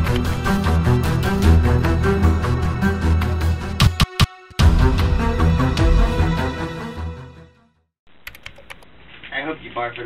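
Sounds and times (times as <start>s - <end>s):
background music: 0.0s - 7.9s
sharp typing clicks: 8.2s - 8.9s.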